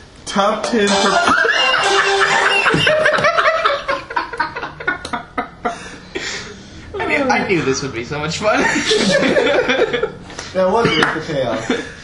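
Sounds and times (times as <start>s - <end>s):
person laughing loudly: 1.0s - 5.9s.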